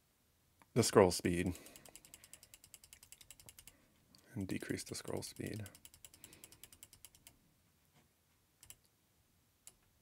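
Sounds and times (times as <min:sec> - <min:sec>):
rapid computer mouse ticks: 0:01.6 - 0:03.8, 0:04.6 - 0:07.4, 0:08.6 - 0:08.9.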